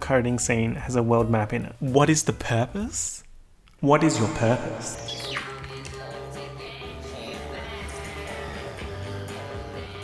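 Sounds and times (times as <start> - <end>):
electronic drama score: 3.9 - 5.8.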